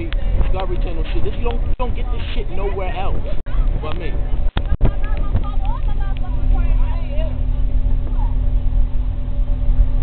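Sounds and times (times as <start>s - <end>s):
passengers chattering: 0.0s - 8.7s
bus engine and road rumble: 0.0s - 10.0s.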